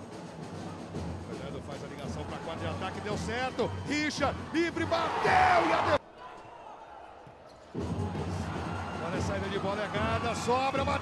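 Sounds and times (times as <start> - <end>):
crowd noise: 0.0 - 11.0
quiet arena ambience: 0.0 - 11.0.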